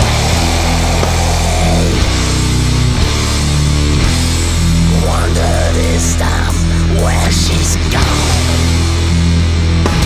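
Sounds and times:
distorted guitar and bass chord: 0:00.0 - 0:10.0.

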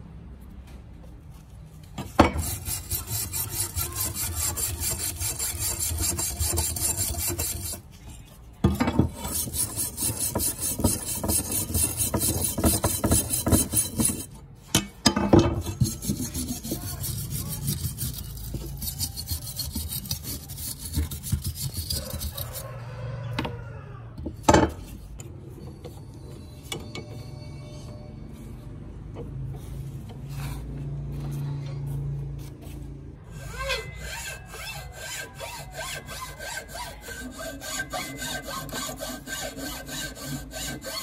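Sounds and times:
wire brush scrubbing steel blade: 0:02.3 - 0:07.9, 0:09.1 - 0:14.4, 0:15.6 - 0:22.7, 0:33.3 - 0:41.0.

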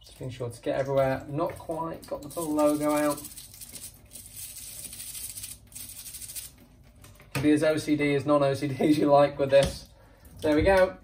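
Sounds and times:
brush scrubbing: 0:02.2 - 0:06.6.

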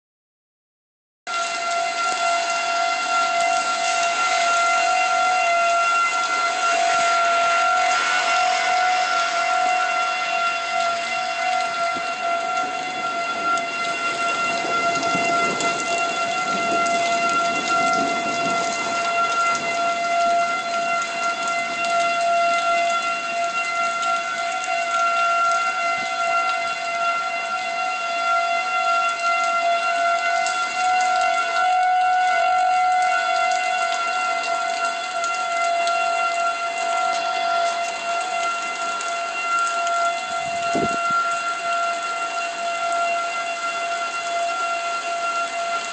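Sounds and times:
storm warning siren: 0:01.3 - 0:45.9
rushing noise: 0:03.0 - 0:20.0.

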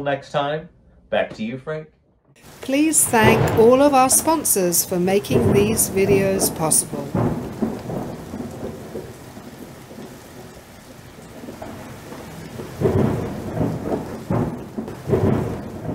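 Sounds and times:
steady rain: 0:02.4 - 0:15.9
thunder rumbling: 0:02.4 - 0:15.9.

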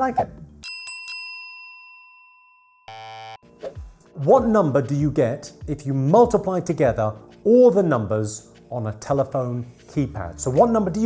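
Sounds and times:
bell ding ringing: 0:00.6 - 0:03.4
short buzzer tone: 0:02.9 - 0:03.4.

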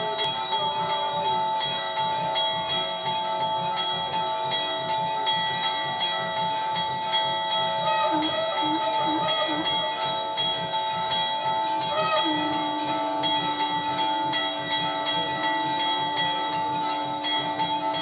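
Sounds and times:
temple bells ringing: 0:00.0 - 0:18.0.

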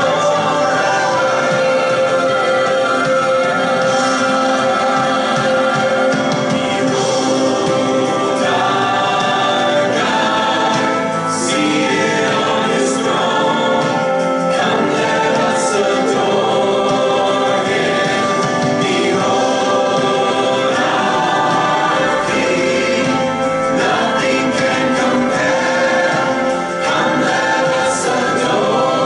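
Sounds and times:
backing music: 0:00.0 - 0:29.0
choir singing held chords: 0:00.0 - 0:29.0.

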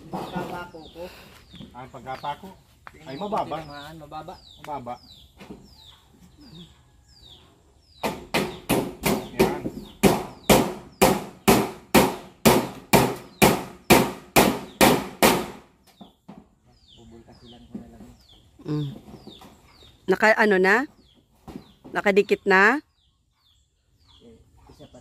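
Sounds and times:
small bird chirping: 0:00.2 - 0:11.1, 0:15.8 - 0:25.0.

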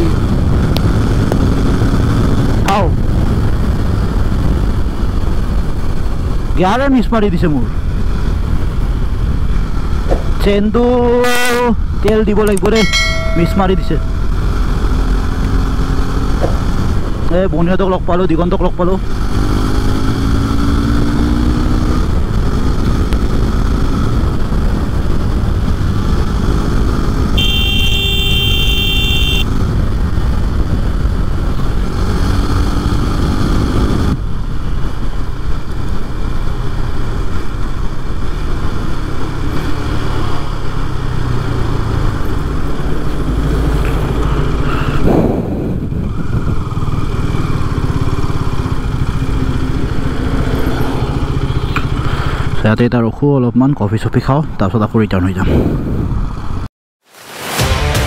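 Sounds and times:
motorcycle engine at speed: 0:00.0 - 0:06.8, 0:07.5 - 0:17.5, 0:18.2 - 0:52.6
heavy wind noise: 0:00.0 - 0:39.8, 0:40.4 - 0:52.7, 0:54.4 - 0:56.7
vehicle horn: 0:27.3 - 0:29.6.

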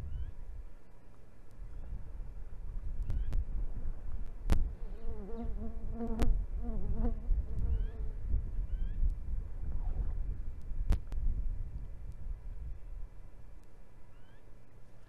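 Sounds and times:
steady low rumble: 0:00.0 - 0:15.0
insect buzzing: 0:04.8 - 0:08.2.

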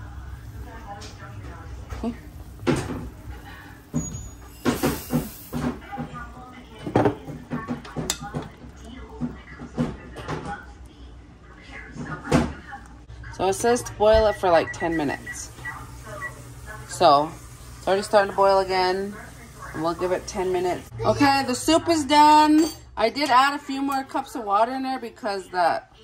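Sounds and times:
cookware knocks and clunks: 0:06.8 - 0:08.6.

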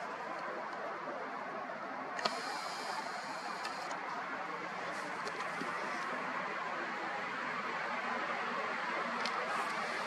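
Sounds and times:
steady background hiss: 0:00.0 - 0:10.0
camera zoom lens motor whining: 0:02.2 - 0:04.0
small clicks: 0:02.2 - 0:04.0.

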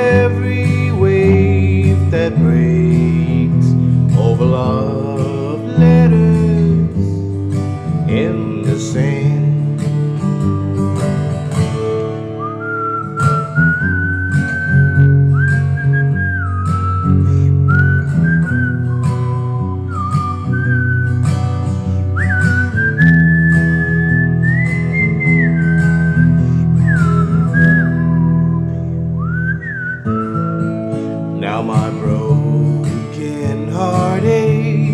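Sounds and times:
acoustic guitar strumming: 0:00.0 - 0:34.9
man whistling a melody: 0:00.0 - 0:34.9.

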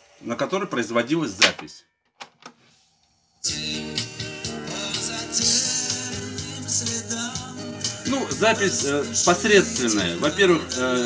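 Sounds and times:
music with singing from cassette: 0:03.4 - 0:11.0.

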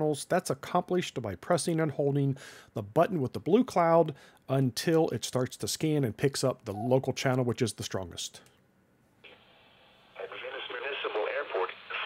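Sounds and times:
faint radio hiss: 0:00.0 - 0:12.0
automated voice over radio speaker: 0:10.2 - 0:12.0.

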